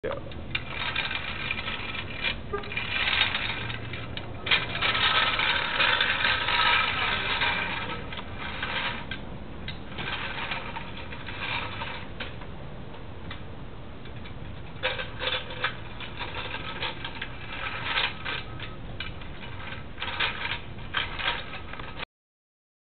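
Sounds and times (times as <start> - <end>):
metal toy truck rattling on concrete: 0.1 - 12.5, 13.3 - 22.1.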